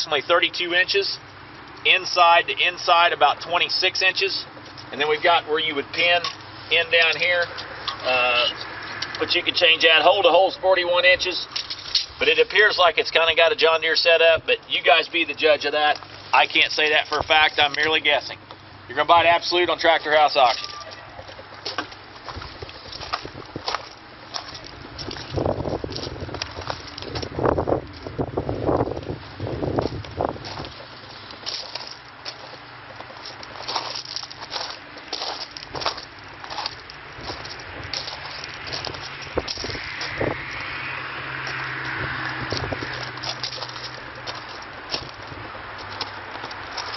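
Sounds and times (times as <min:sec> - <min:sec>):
footsteps crunching on gravel: 0:14.2 - 0:46.9.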